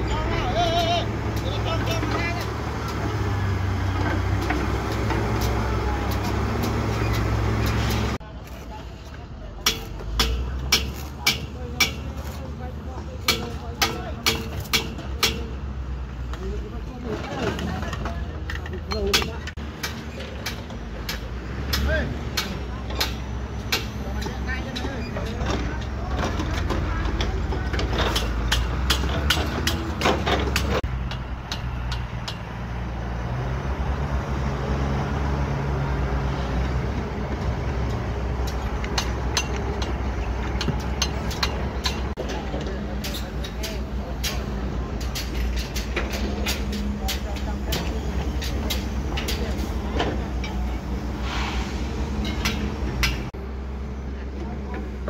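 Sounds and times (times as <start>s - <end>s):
excavator diesel engine humming: 0.0s - 55.0s
heavy machinery rumble: 0.0s - 55.0s
metal clanks and knocks: 3.8s - 8.2s, 9.6s - 12.5s, 13.2s - 15.6s, 17.0s - 32.6s, 37.0s - 51.1s, 52.1s - 53.4s.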